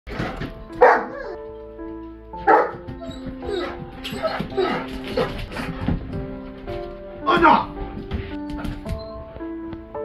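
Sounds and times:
background music with sustained notes: 0.1s - 10.0s
large dog barking: 0.8s - 1.4s, 2.4s - 5.7s.

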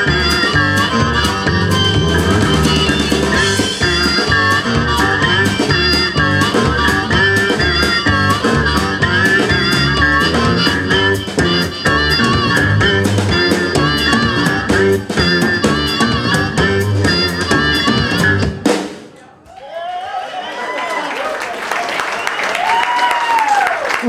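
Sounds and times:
amplified harmonica: 0.0s - 18.6s
electric bass: 0.0s - 18.7s
guitar: 0.0s - 18.7s
drum kit steady beat: 0.0s - 19.2s.

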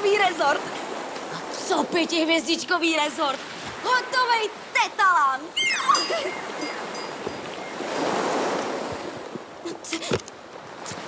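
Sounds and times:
sea waves washing: 0.0s - 11.0s.

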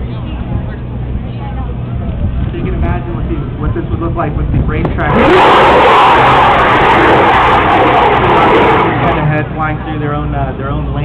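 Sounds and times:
rocket engine roaring: 2.4s - 11.0s.

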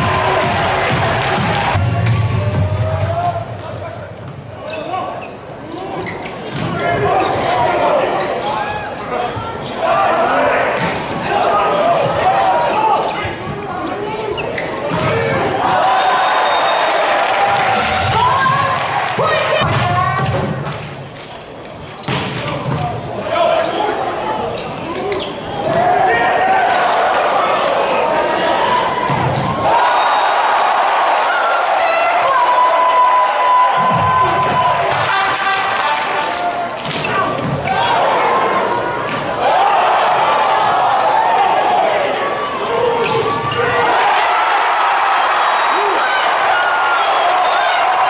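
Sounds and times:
arena noise: 0.0s - 48.0s
sport shoes squeaking on court: 3.7s - 9.9s, 12.6s - 15.5s, 23.6s - 25.7s.

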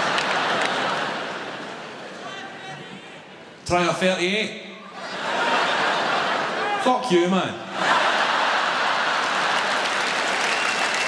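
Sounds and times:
audience applauding: 0.0s - 1.3s, 7.9s - 11.0s
audience laughing: 0.0s - 2.0s, 5.0s - 6.8s, 7.7s - 10.0s.

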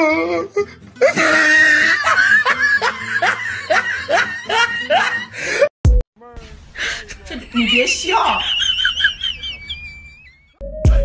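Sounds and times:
snickering laughter: 1.0s - 5.4s, 7.0s - 10.6s.

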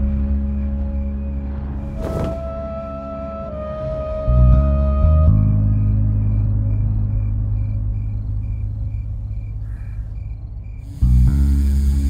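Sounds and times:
film score drone with pulsing tone: 0.0s - 12.0s.

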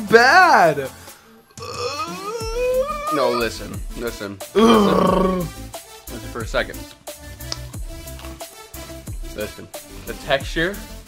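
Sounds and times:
man groaning: 1.6s - 3.6s, 4.6s - 5.6s.

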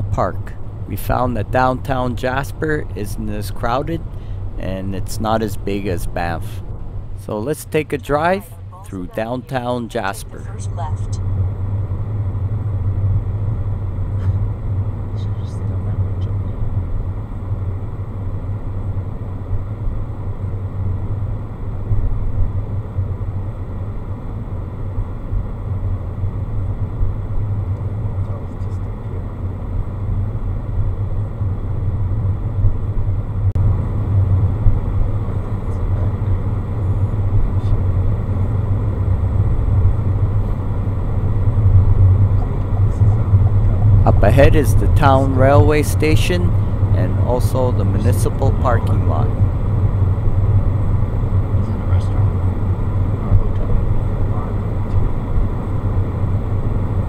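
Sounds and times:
car engine and tyres rumbling: 0.0s - 57.0s.

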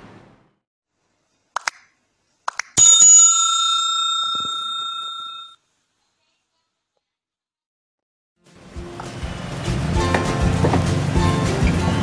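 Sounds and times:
bright bell ring: 2.8s - 5.6s.

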